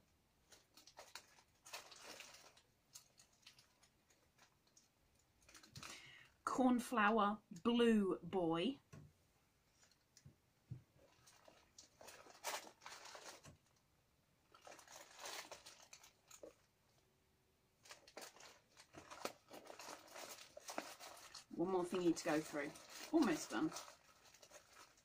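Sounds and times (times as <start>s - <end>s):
paper rustling and crinkling: 0.4s - 5.9s, 10.9s - 13.8s, 14.5s - 16.7s, 17.8s - 25.0s.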